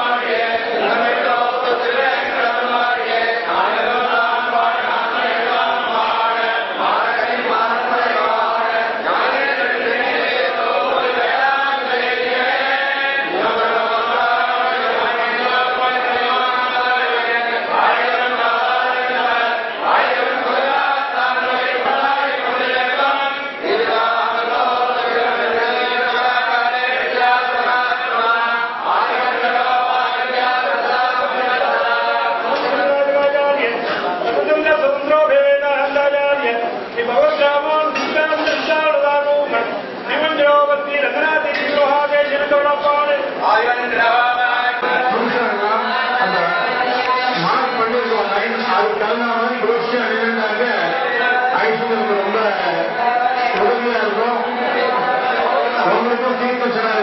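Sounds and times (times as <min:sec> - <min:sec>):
voices chanting together: 0:00.0 - 0:37.2, 0:43.2 - 0:57.0.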